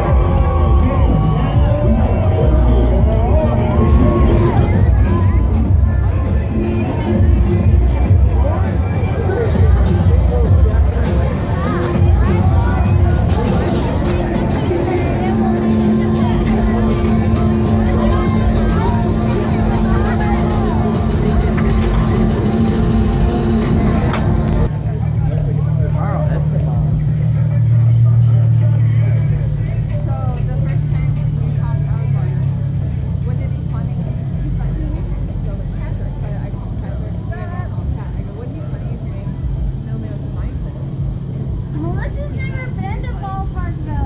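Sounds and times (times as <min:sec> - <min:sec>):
music: 0:00.0 - 0:24.7
crowd noise: 0:00.0 - 0:44.0
people talking: 0:00.0 - 0:44.0
vehicle engine humming: 0:00.0 - 0:44.0.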